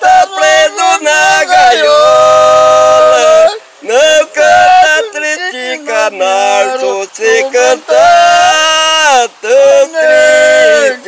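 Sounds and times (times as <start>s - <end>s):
men singing unaccompanied: 0.0s - 11.0s.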